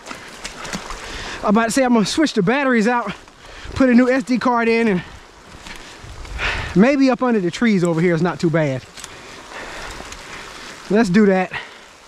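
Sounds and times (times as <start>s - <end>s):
rain falling on leaves: 0.0s - 12.0s
man speaking: 1.4s - 3.2s, 3.8s - 5.1s, 6.7s - 8.9s, 10.9s - 11.6s.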